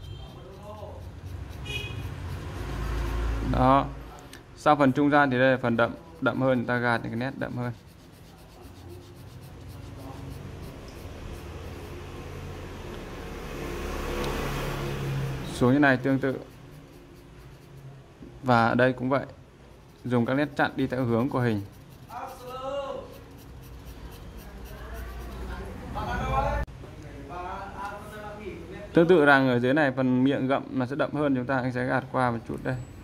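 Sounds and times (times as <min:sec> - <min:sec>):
pencil shading on paper: 0:00.0 - 0:04.0, 0:05.0 - 0:13.3, 0:14.9 - 0:25.7.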